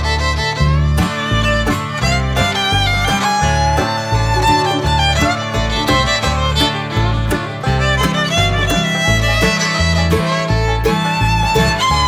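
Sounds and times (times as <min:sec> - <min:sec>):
bass line: 0:00.0 - 0:12.0
fiddle melody: 0:00.0 - 0:12.0
strummed acoustic guitar: 0:00.0 - 0:12.0.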